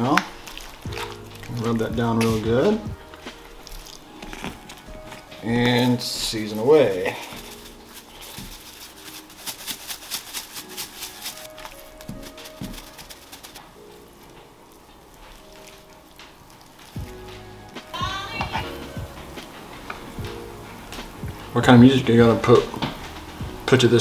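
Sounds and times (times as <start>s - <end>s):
seasoning shaker rattling: 5.4s - 14.0s.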